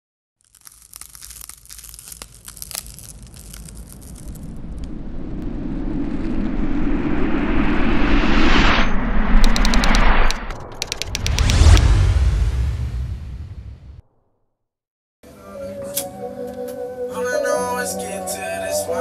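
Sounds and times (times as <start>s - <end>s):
crackling clicks: 0.4s - 5.0s, 9.4s - 11.9s
rumbling whoosh: 1.6s - 14.0s.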